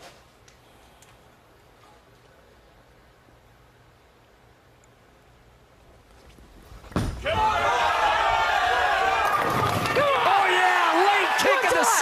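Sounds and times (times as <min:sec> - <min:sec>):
crowd cheering and shouting: 0:07.2 - 0:12.0.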